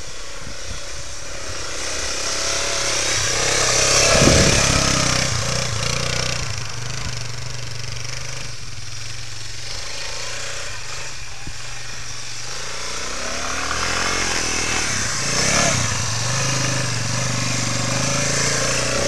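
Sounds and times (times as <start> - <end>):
three-wheeler engine running: 0.0 - 19.0.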